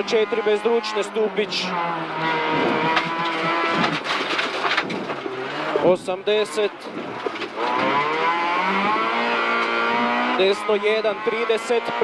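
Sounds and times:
car engine revving from inside cabin: 1.7 - 4.0, 7.6 - 10.4.

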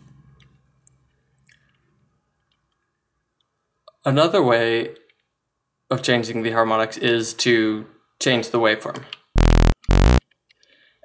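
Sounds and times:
low tone: 9.4 - 10.2.

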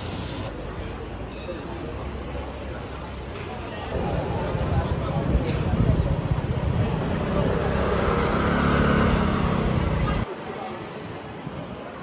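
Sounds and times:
street background: 0.0 - 12.0.

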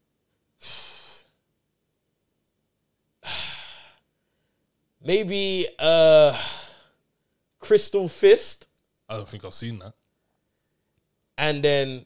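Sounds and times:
person sighing: 0.6 - 1.3, 3.2 - 4.0, 6.2 - 6.9.

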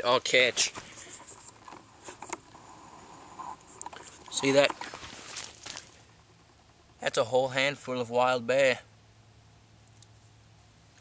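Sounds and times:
faint rustling: 0.0 - 7.0.

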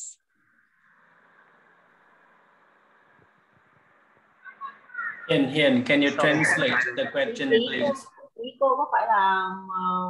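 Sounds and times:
microphone hiss: 0.0 - 10.0
faint voice: 4.4 - 8.5.

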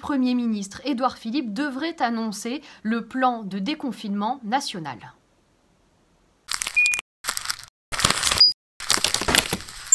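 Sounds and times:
brief beeps: 6.8 - 7.0.

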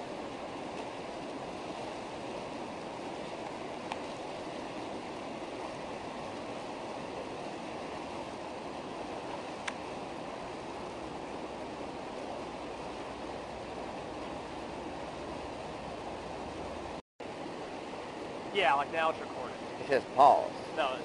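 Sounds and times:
rapids rushing: 0.0 - 21.0.

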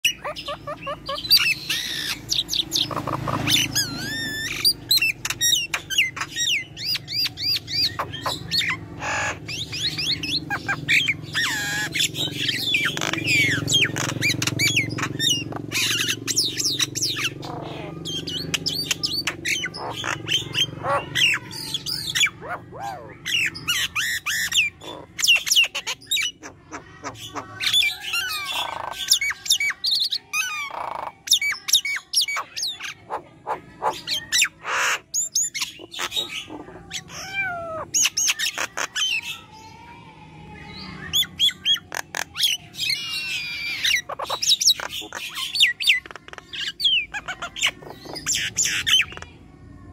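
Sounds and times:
bird singing whistles and squawks: 0.0 - 39.9, 40.6 - 49.3.

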